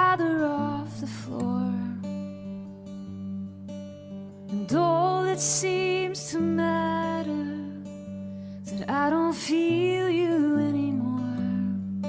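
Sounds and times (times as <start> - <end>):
woman singing: 0.0 - 2.6, 4.5 - 12.0
acoustic guitar: 0.0 - 12.0.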